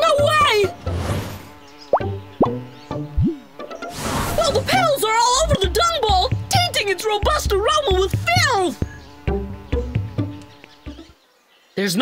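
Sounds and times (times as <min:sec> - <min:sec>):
light background music: 0:00.0 - 0:11.2
cartoon bug wings buzzing: 0:00.0 - 0:11.3.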